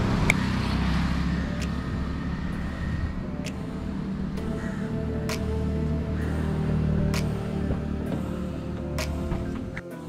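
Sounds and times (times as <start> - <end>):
vehicle engine running: 0.0 - 9.8.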